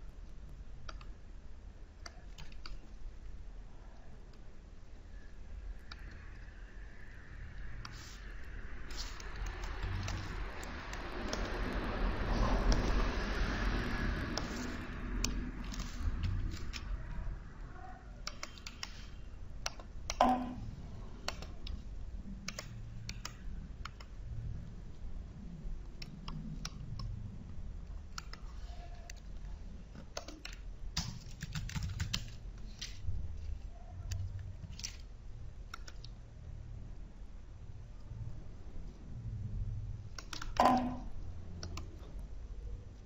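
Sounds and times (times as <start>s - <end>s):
low steady hum: 0.0s - 43.0s
computer mouse clicks: 0.8s - 1.2s, 2.0s - 3.0s, 5.8s - 6.5s, 7.5s - 13.0s, 14.3s - 17.0s, 18.2s - 20.6s, 21.2s - 21.8s, 22.4s - 24.2s, 25.8s - 27.2s, 27.8s - 33.1s, 34.0s - 36.2s, 40.1s - 42.1s.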